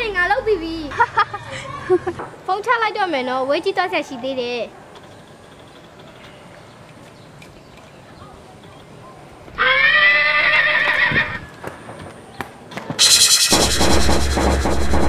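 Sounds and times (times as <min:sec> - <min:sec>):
horse neighing: 0:09.6 - 0:11.5.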